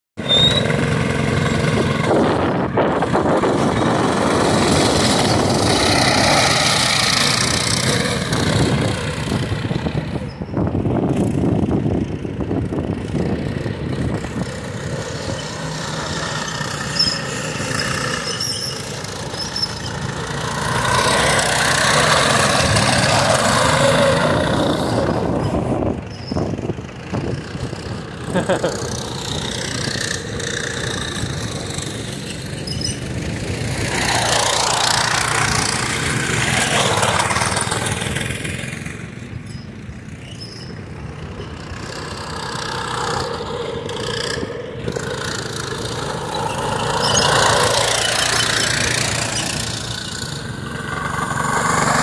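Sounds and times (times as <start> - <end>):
go-kart engines revving: 0.2 - 52.0.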